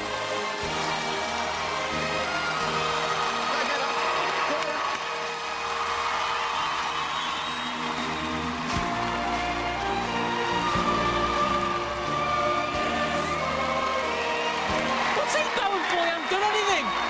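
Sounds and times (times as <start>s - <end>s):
audience applauding and cheering: 0.0s - 17.0s
background music: 0.0s - 17.0s.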